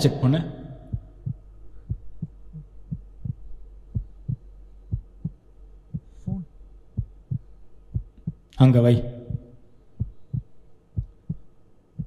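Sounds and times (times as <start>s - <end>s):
steady low hum: 0.0s - 12.0s
heartbeat thumps: 0.7s - 12.0s.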